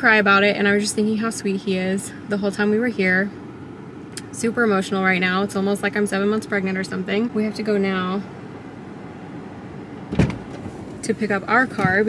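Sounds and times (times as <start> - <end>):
car air conditioning hum: 0.0 - 12.0
car door shutting: 10.1 - 11.0, 11.7 - 12.0.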